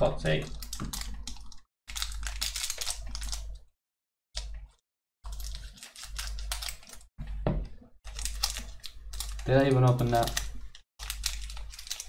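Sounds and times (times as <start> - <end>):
foil wrapper crinkling and tearing: 0.4 - 3.7, 5.2 - 7.1, 8.1 - 12.0.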